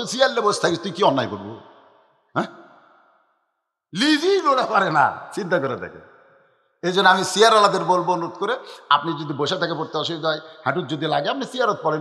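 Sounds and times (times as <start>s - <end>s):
man speaking: 0.0s - 1.6s, 4.0s - 6.0s, 6.8s - 12.0s
man speaking into a microphone: 0.0s - 1.6s, 4.0s - 6.0s, 6.8s - 12.0s.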